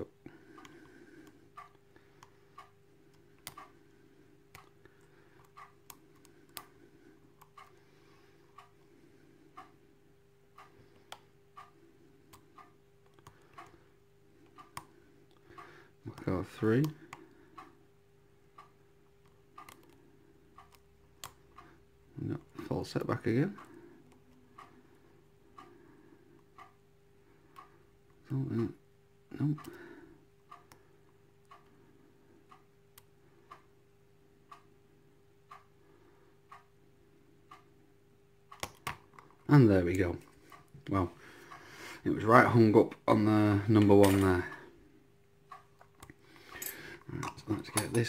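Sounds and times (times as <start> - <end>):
low steady hum: 0.0 - 48.0
soft regular tick: 0.3 - 7.8, 8.5 - 8.9, 9.5 - 17.8, 18.5 - 26.8, 27.4 - 28.7, 29.6 - 33.7, 34.5 - 34.7, 35.4 - 35.7, 36.5 - 36.8, 37.5 - 37.8, 38.5 - 41.6, 45.5 - 48.0.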